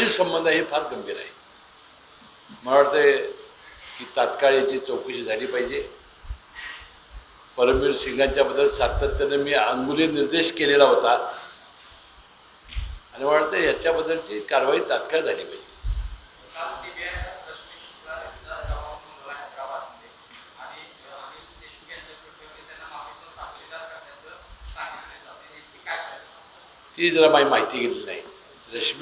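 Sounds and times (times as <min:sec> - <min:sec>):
man speaking: 0:00.0 - 0:01.4, 0:02.5 - 0:06.0, 0:07.6 - 0:11.5, 0:13.1 - 0:15.7, 0:16.5 - 0:29.0
faint hiss: 0:00.0 - 0:29.0.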